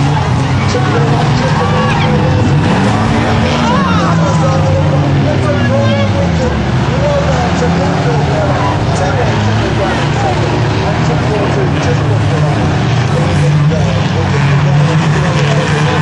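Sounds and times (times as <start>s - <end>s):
racing engines: 0.0s - 16.0s
spectators' voices: 0.0s - 16.0s.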